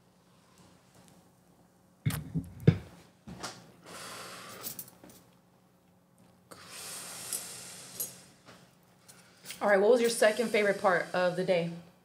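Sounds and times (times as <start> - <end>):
person exhaling smoke: 3.8 - 4.7, 6.5 - 8.7.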